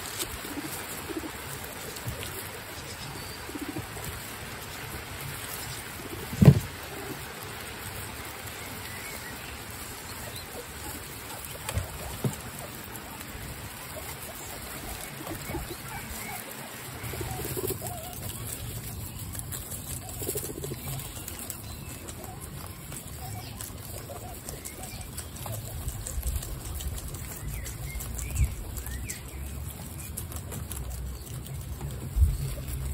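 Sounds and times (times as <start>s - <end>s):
guinea pigs crunching lettuce: 0.0s - 32.9s.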